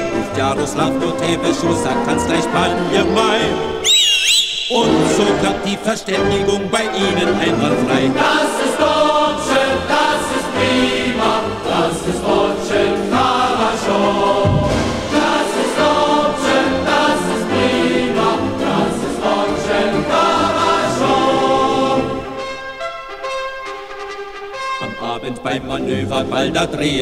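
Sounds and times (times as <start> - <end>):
choir singing: 0.0 - 3.9, 4.5 - 22.6, 24.8 - 27.0.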